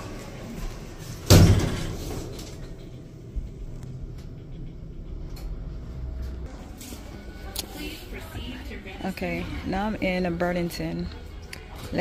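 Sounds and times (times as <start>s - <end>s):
elevator car rumbling: 0.0s - 6.5s
elevator doors sliding: 0.0s - 7.4s.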